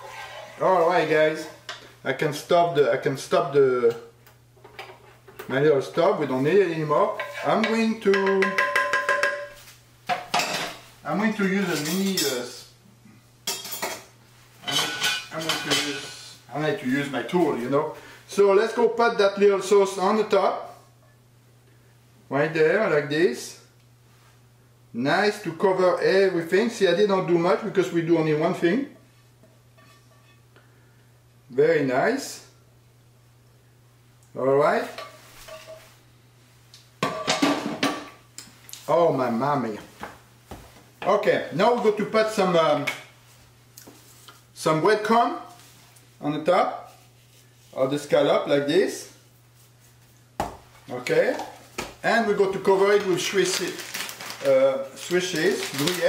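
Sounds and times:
wooden spoon tapping metal pan: 7.2s - 9.7s
metal skillet clattering in sink: 7.2s - 10.8s.

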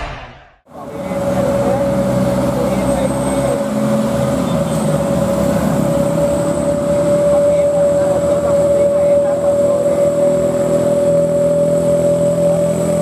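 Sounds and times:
steady high whine: 0.0s - 0.6s
diesel truck engine climbing: 0.7s - 13.0s.

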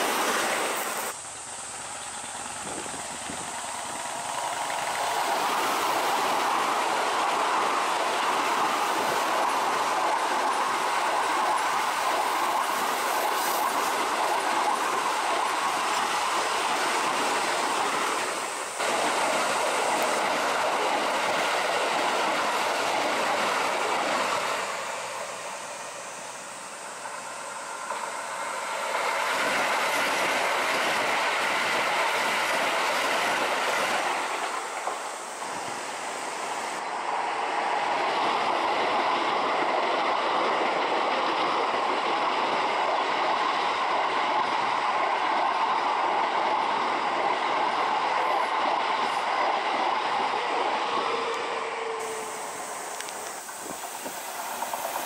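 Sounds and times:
train wheels rolling on rails: 0.0s - 55.0s.

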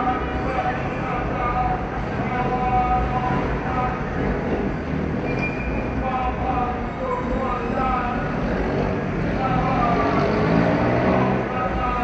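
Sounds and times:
people talking: 0.0s - 4.3s, 6.0s - 8.4s, 9.4s - 10.4s, 11.2s - 12.0s
city traffic rumble: 0.0s - 12.0s.

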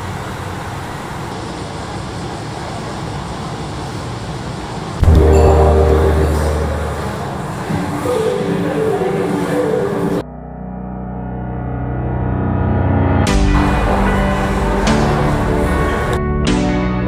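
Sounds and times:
city traffic and rail noise: 0.0s - 10.2s, 13.3s - 16.4s
deep ringing hit: 5.0s - 7.7s.

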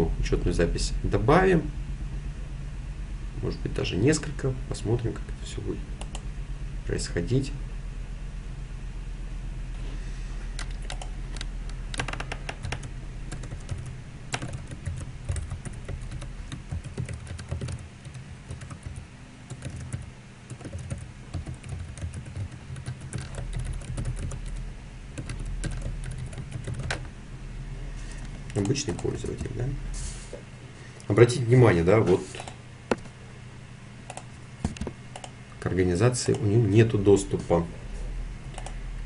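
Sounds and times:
steady low hum: 0.0s - 39.0s
computer keyboard typing: 6.0s - 6.2s, 10.6s - 27.1s, 34.1s - 35.3s, 38.5s - 38.8s.

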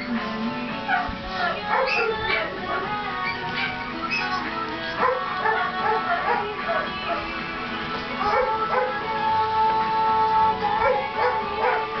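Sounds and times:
background music with held tones: 0.0s - 12.0s
dog yipping and whimpering: 0.9s - 7.2s.

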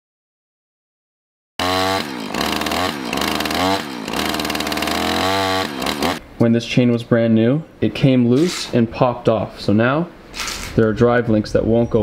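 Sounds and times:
chainsaw engine revving: 1.6s - 6.2s.

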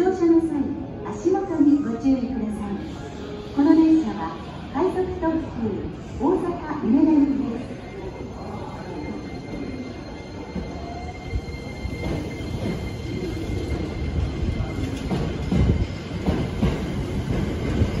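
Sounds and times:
thin steady train squeal: 0.9s - 18.0s.

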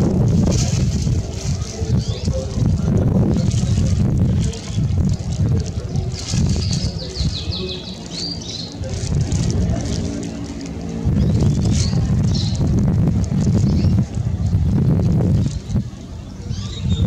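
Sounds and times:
wind rumble on microphone: 0.0s - 17.0s
small birds chirping: 0.6s - 14.7s, 15.4s - 17.0s.

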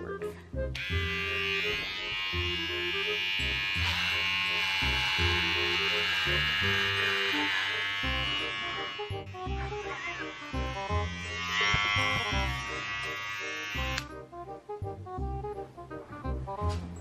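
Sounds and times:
background music with steady beat: 0.0s - 6.8s, 7.5s - 17.0s
electric hair clippers buzzing: 0.8s - 14.1s.

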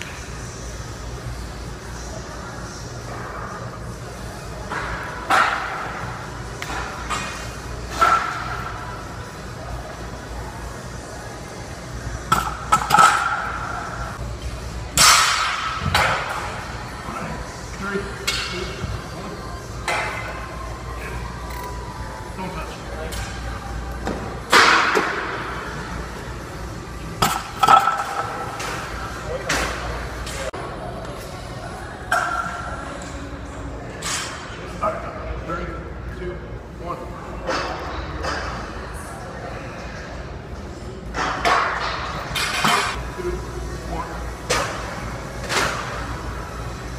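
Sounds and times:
gym background noise: 0.0s - 46.9s
voices: 0.0s - 46.9s.

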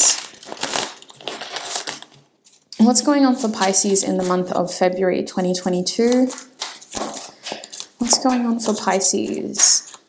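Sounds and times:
cards being shuffled: 6.1s - 10.0s.

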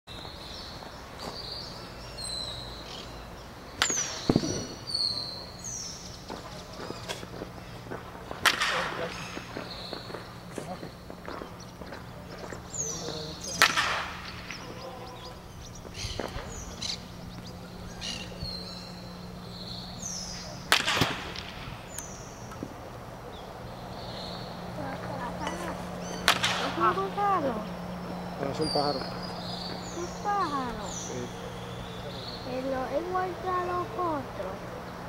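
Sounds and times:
bird chirps: 0.1s - 7.8s, 9.2s - 20.7s, 23.2s - 33.8s
low hum: 0.1s - 35.0s
bat cracking ball: 3.8s - 5.3s, 7.1s - 10.3s, 13.3s - 14.8s, 20.4s - 22.8s, 25.0s - 27.2s.

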